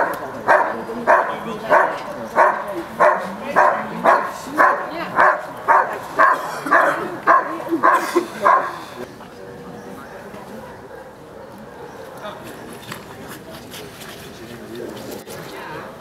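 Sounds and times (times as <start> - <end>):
dog barking: 0.0 - 8.8, 10.2 - 12.3.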